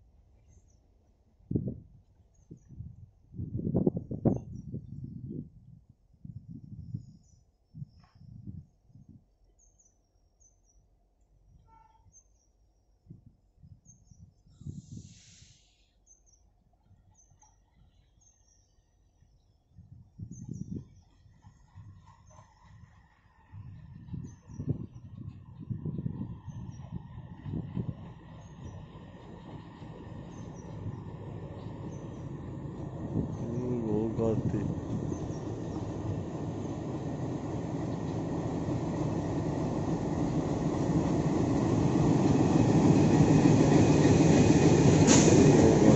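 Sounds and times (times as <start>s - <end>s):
diesel locomotive engine rumble: 20.0s - 45.9s
small birds chirping: 28.1s - 32.4s, 34.9s - 36.8s.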